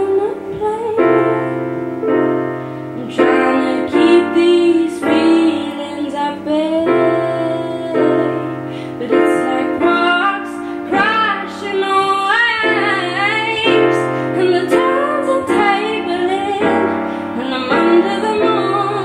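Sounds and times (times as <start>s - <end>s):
grand piano chords: 0.0s - 19.0s
woman singing: 0.0s - 19.0s.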